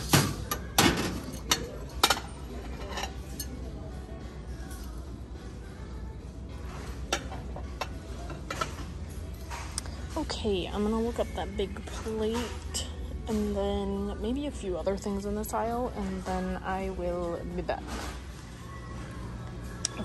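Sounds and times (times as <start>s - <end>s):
dishes clinking: 0.0s - 3.7s.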